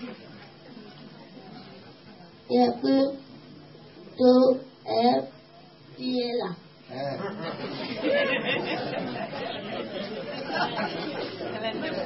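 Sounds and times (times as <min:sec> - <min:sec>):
indistinct crowd chatter: 0:00.0 - 0:04.6, 0:07.0 - 0:12.0.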